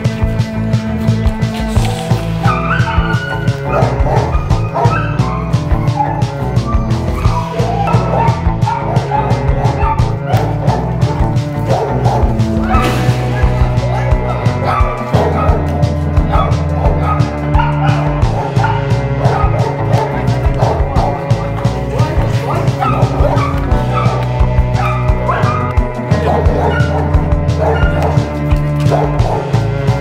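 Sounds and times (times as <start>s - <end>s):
background music with steady beat: 0.0s - 30.0s
dog yipping and barking: 2.4s - 10.8s, 13.9s - 15.7s, 16.3s - 20.8s, 22.5s - 24.2s, 24.8s - 28.2s.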